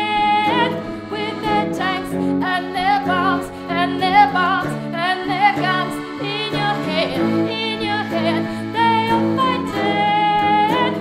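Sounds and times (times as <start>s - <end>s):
accordion chords: 0.0s - 11.0s
electric guitar chords: 0.0s - 11.0s
woman singing with vibrato: 0.0s - 11.0s.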